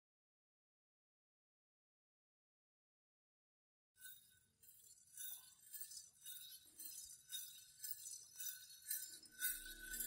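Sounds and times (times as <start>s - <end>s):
small metal bells jingling: 4.0s - 10.0s.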